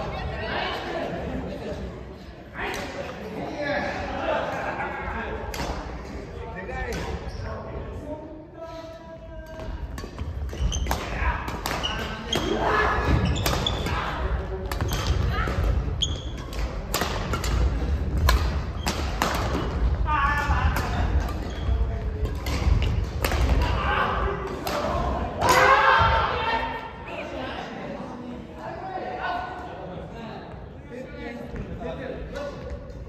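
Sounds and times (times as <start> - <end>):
shoes squeaking on court floor: 10.2 - 11.1, 11.7 - 14.0, 14.8 - 16.8, 21.4 - 23.0
racket striking shuttlecock: 16.3 - 19.7, 22.2 - 23.8
players shouting: 23.3 - 27.4.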